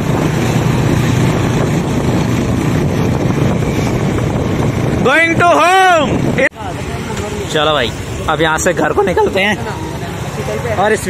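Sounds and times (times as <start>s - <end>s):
wind rushing over microphone: 0.0s - 6.8s
motorcycle engine drone: 0.0s - 11.0s.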